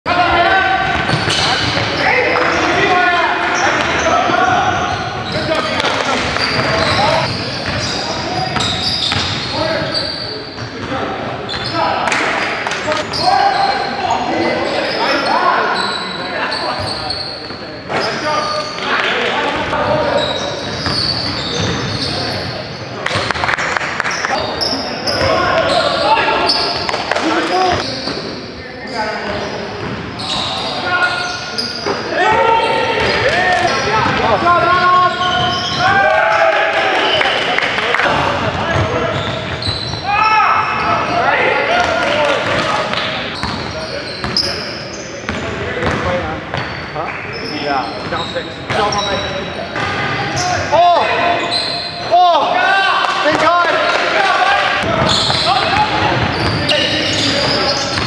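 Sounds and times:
players calling out: 0:00.1 - 0:58.0.

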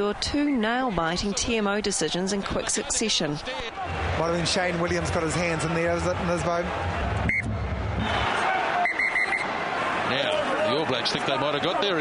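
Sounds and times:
stadium crowd noise: 0:00.0 - 0:12.0
man's voice: 0:03.4 - 0:06.8.

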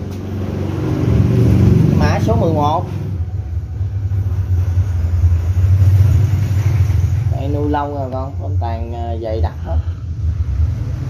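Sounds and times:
loud low rumble: 0:00.0 - 0:11.0.

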